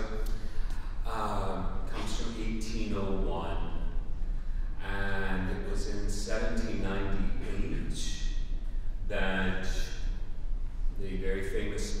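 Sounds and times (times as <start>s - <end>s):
man talking through a microphone: 0.0s - 0.4s, 1.0s - 4.0s, 4.8s - 10.1s, 10.9s - 12.0s.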